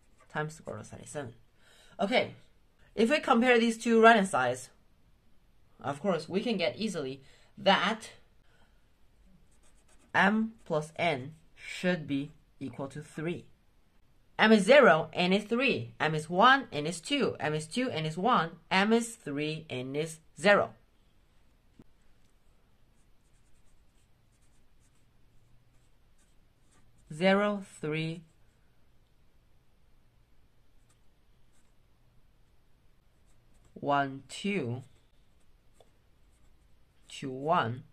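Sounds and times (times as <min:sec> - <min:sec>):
marker pen scratching: 0:00.0 - 0:00.7, 0:09.4 - 0:11.4, 0:23.0 - 0:27.2, 0:30.8 - 0:31.8, 0:33.0 - 0:33.8, 0:34.7 - 0:37.2.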